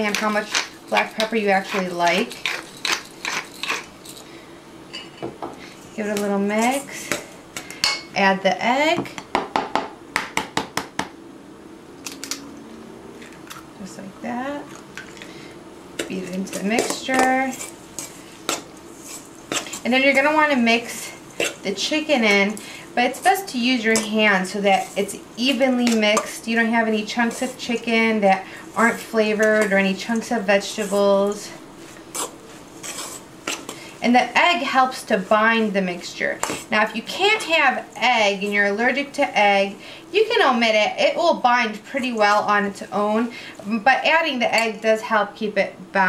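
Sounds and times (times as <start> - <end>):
metal spoon scraping a steel bowl: 0.0 - 4.2, 32.1 - 33.8.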